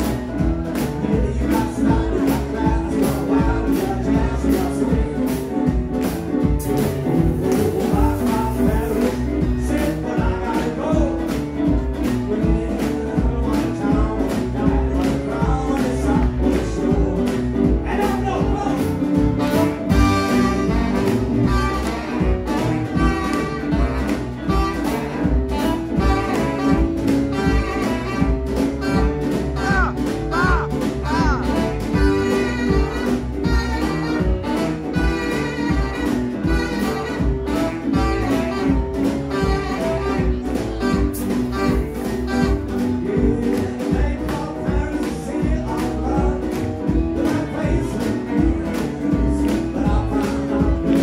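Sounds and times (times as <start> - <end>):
swing band playing: 0.0 - 51.0.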